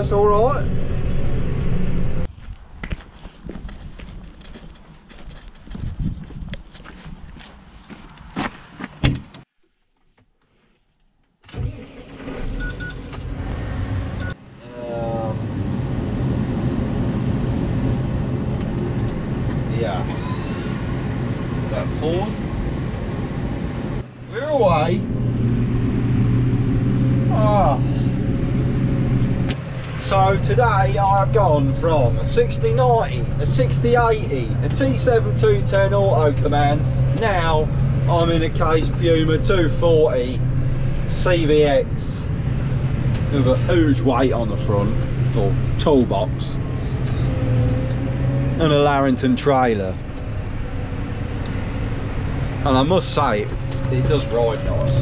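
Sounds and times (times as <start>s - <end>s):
diesel engine hum in cab: 0.0s - 2.3s, 11.5s - 55.0s.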